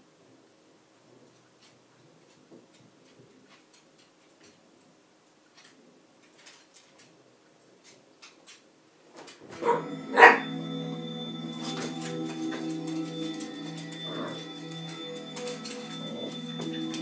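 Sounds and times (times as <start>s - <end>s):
dog barking: 9.6s - 10.5s
music: 9.6s - 17.0s.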